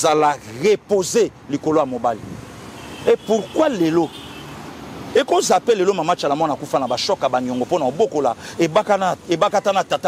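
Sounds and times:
man speaking: 0:00.0 - 0:02.3, 0:03.0 - 0:04.2, 0:05.1 - 0:10.0
road traffic hum: 0:00.0 - 0:10.0.

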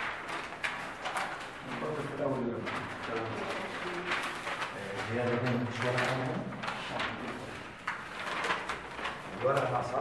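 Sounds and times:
paper rustling and shuffling: 0:00.0 - 0:10.0.

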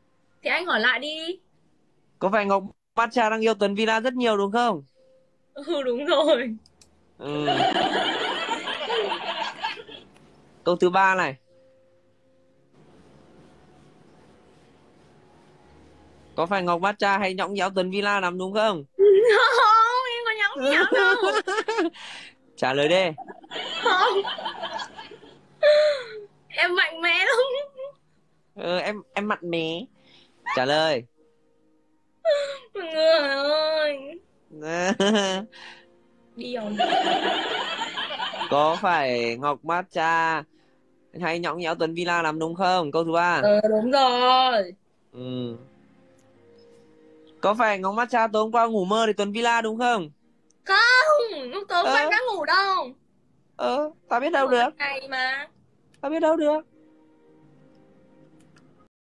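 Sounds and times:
faint background music: 0:00.0 - 0:58.9.

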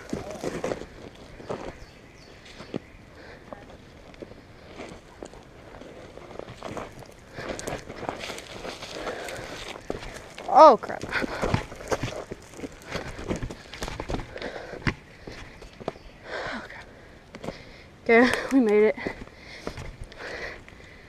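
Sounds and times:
boot footsteps on dirt trail: 0:00.0 - 0:16.1.

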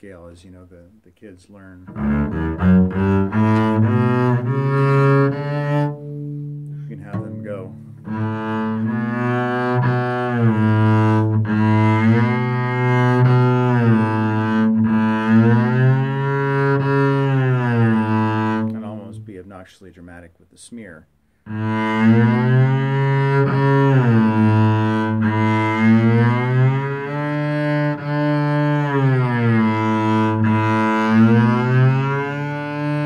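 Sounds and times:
bowed double bass: 0:00.0 - 0:19.7, 0:21.0 - 0:33.0.

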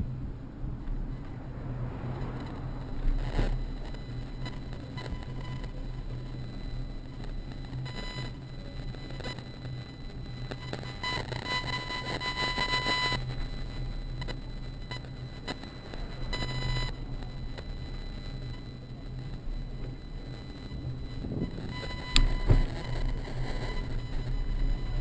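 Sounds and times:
bicycle rumble: 0:00.0 - 0:08.7, 0:19.4 - 0:25.0.

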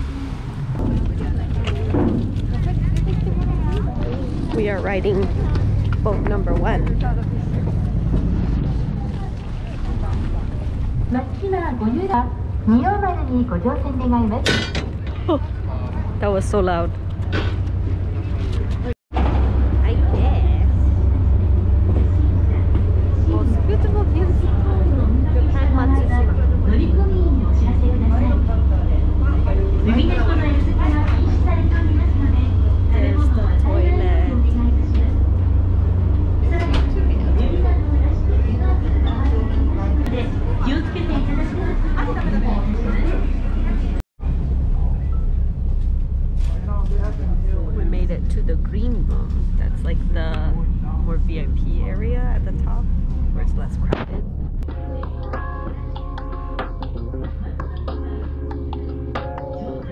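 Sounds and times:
passengers talking: 0:00.0 - 0:19.0, 0:19.6 - 0:59.9
boat engine rumble: 0:00.0 - 0:59.9.

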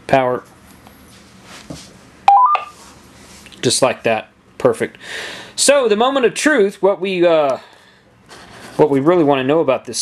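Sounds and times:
three-note power-on beep: 0:02.3 - 0:02.7.

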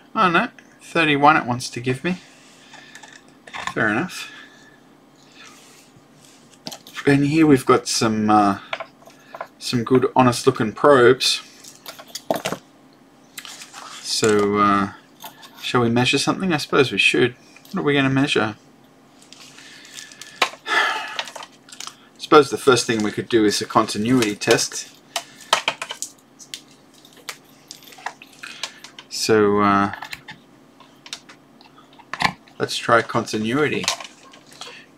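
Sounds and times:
room hiss: 0:13.2 - 0:29.9.

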